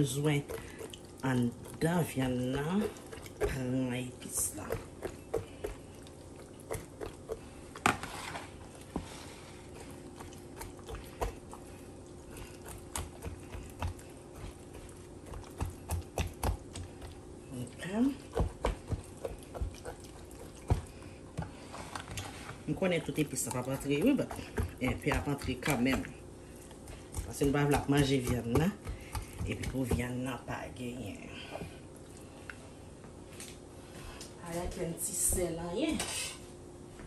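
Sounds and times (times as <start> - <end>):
wet squishing: 0.0 - 32.6.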